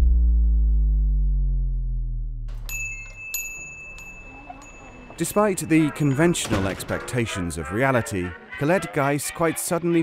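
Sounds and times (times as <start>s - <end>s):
low droning tone: 0.0s - 2.8s
small bell ringing: 2.6s - 6.6s.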